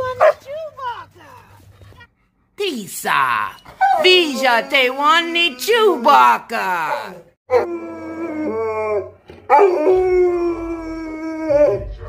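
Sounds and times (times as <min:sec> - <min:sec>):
dog howling and whining: 0:06.9 - 0:12.0.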